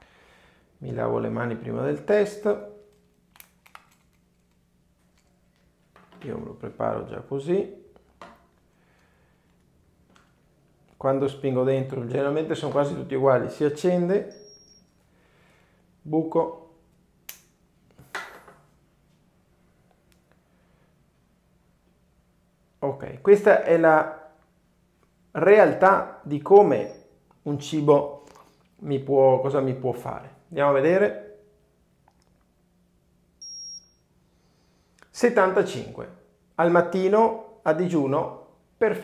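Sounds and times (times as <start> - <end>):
high-pitched meter beep: 14.2 - 15.0, 26.8 - 27.2, 33.4 - 34.1.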